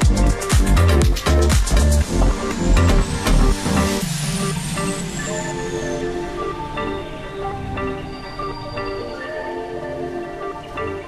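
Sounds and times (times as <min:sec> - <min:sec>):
electronic dance music: 0:00.0 - 0:11.0
high falling synth sweep: 0:01.3 - 0:10.7.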